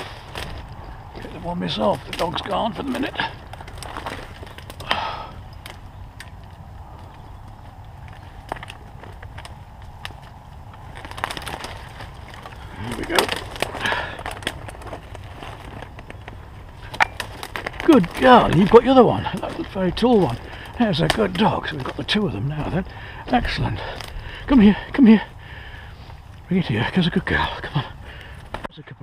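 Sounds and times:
twigs snapping: 0:00.0 - 0:28.7
branches crackling and scraping: 0:00.0 - 0:29.0
rustling undergrowth: 0:00.0 - 0:29.0.

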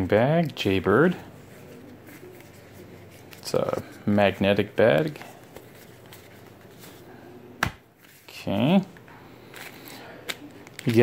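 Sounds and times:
soft handling rustle: 0:00.1 - 0:07.3, 0:08.0 - 0:11.0.

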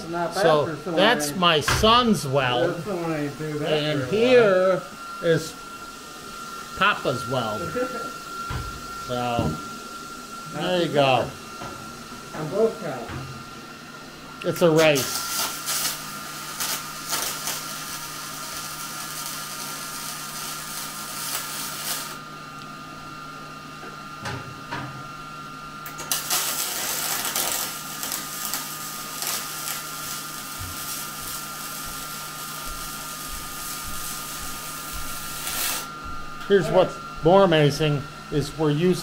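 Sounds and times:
welding arc crackling buzz: 0:00.0 - 0:22.7, 0:25.8 - 0:39.0.

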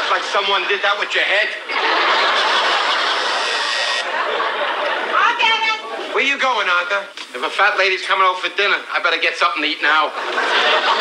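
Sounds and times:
studio audience laughing: 0:00.0 - 0:05.5, 0:10.0 - 0:11.0.

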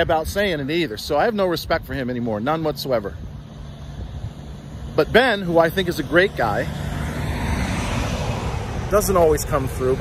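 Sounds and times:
car passing on road: 0:01.3 - 0:10.0.

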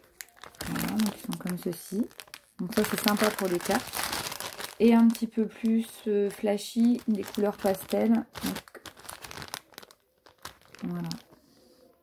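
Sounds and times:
plastic sachet crinkling: 0:00.0 - 0:11.6.

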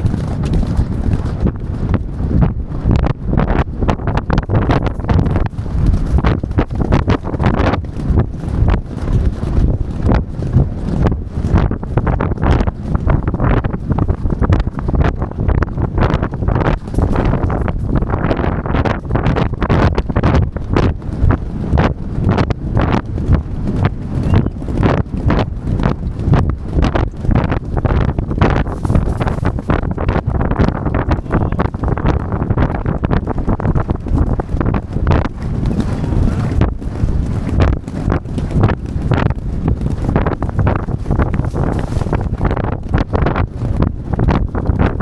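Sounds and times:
horse hoofbeats galloping on turf: 0:00.0 - 0:45.0
wind noise on microphone: 0:00.0 - 0:45.0.

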